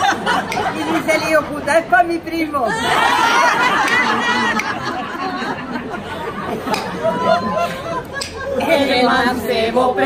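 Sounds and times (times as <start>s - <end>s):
women laughing and chattering: 0.0s - 1.6s, 2.6s - 9.0s.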